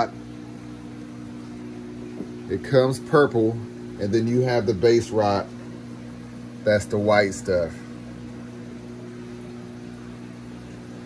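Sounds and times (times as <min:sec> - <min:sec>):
aquarium pumps humming: 0:00.0 - 0:11.0.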